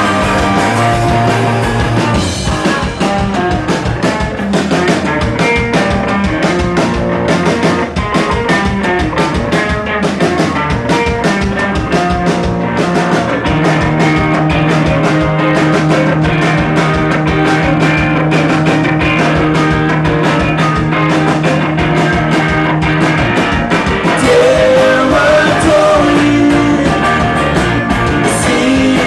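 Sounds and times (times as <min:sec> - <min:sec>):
drum kit beat: 0:00.0 - 0:29.0
electric guitar: 0:00.0 - 0:29.0
strummed acoustic guitar: 0:00.0 - 0:29.0.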